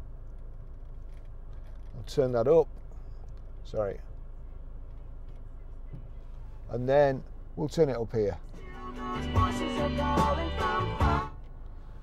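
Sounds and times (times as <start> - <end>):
low car cabin hum: 0.0 - 12.0.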